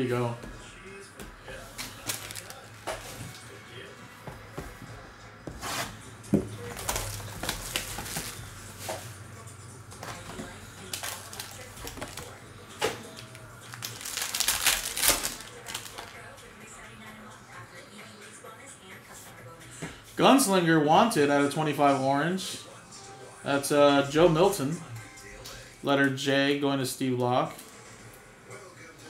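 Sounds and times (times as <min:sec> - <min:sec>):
cardboard and wrapper tearing: 0:01.8 - 0:03.1, 0:06.6 - 0:08.4, 0:10.8 - 0:12.4, 0:13.2 - 0:16.2.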